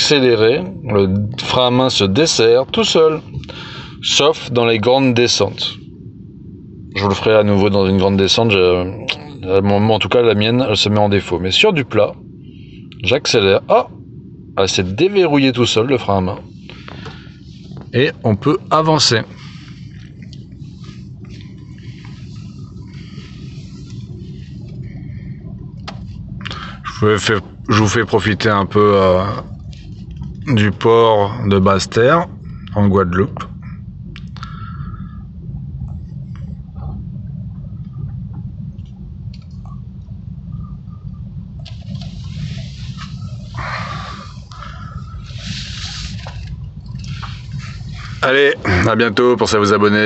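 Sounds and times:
car cabin low rumble: 0.0s - 50.0s
rushing hiss: 16.4s - 25.4s, 41.7s - 49.1s
tyre and road noise: 36.4s - 50.0s.

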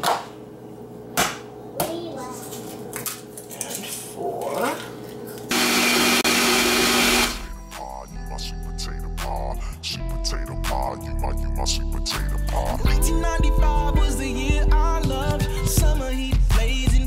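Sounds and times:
blender running loudly: 5.5s - 7.5s.

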